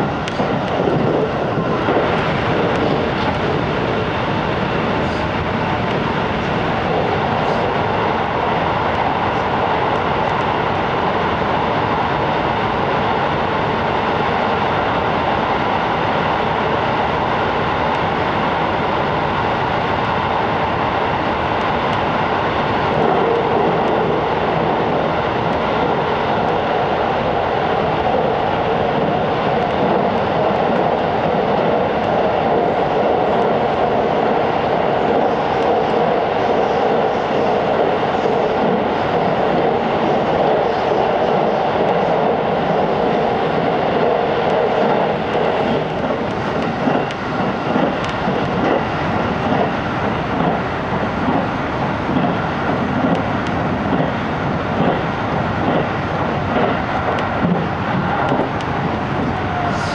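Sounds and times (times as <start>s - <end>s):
air rushing past train: 0.0s - 59.9s
train wheels on rail: 0.0s - 59.9s.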